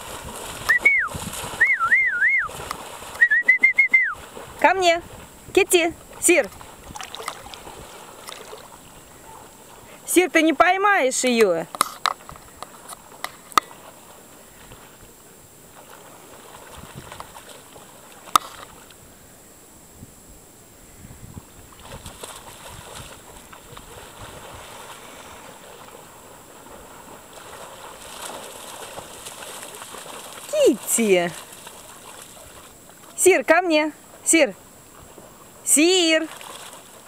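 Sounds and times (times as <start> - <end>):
water lapping and sloshing: 0.0 - 19.0, 21.6 - 37.0.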